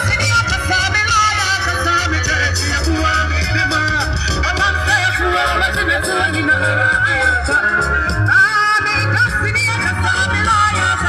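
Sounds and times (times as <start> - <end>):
live reggae band playing: 0.0 - 11.0
pulsing bass: 0.0 - 11.0.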